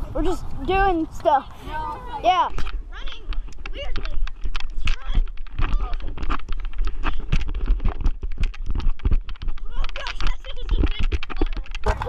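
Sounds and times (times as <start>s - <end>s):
children's voices: 0.0s - 6.0s, 9.6s - 12.0s
wind buffeting microphone: 0.0s - 12.0s.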